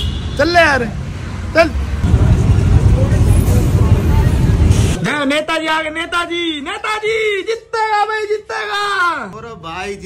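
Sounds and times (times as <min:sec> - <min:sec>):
motorbike engines: 0:00.0 - 0:05.1
train rolling past: 0:02.0 - 0:05.0.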